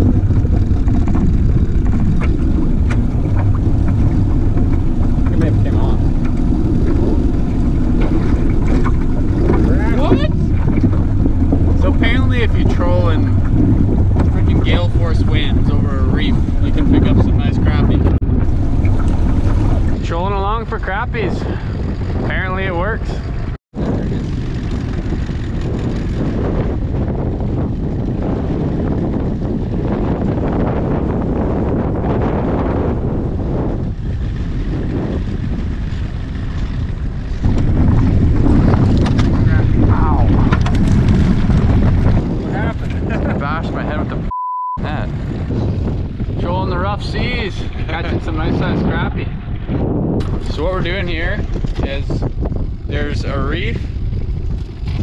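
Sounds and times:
wind buffeting microphone: 0.0s - 55.0s
short steady beep: 44.3s - 44.8s.

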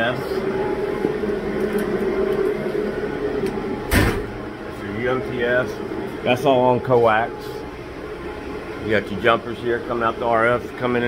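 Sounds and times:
cooling fans humming: 0.0s - 11.0s
steady high tone: 0.0s - 11.0s.

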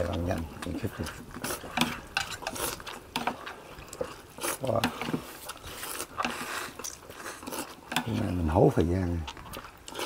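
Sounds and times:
noodles being slurped: 0.0s - 10.0s.

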